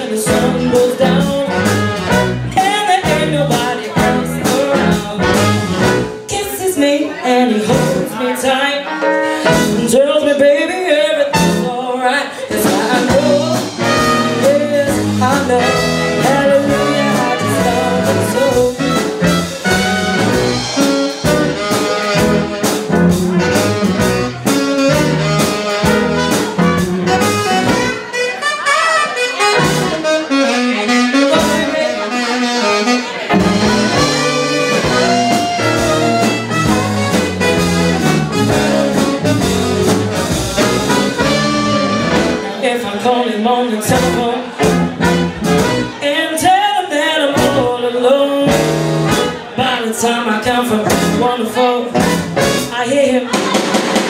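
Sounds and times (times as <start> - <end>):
soul band playing: 0.0 - 54.0
trumpet: 0.3 - 2.6, 3.8 - 6.3, 11.3 - 11.8, 13.1 - 42.6, 44.6 - 46.2, 51.1 - 54.0
tenor saxophone: 0.4 - 2.6, 13.1 - 42.6, 44.6 - 46.2.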